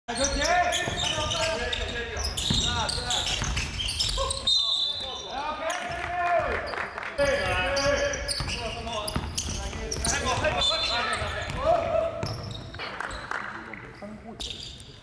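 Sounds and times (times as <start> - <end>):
sneakers squeaking: 0.1 - 6.0, 6.6 - 13.4, 14.3 - 15.0.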